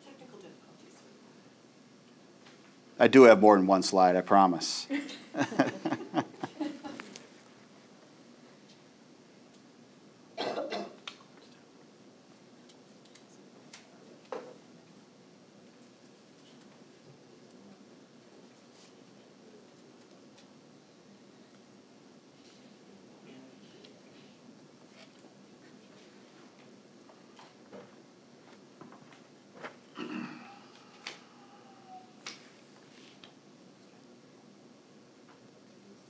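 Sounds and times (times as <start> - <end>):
person coughing: 10.4 - 11.0, 29.9 - 30.6.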